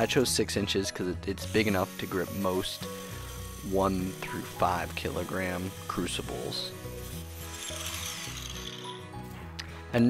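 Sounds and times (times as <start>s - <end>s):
background music: 0.0s - 10.0s
angle grinder cutting steel: 1.3s - 9.4s.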